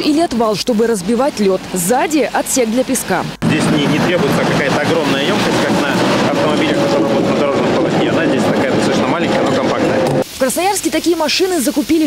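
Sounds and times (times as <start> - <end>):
vehicle and street noise: 0.0 - 10.3
man talking: 3.4 - 10.2.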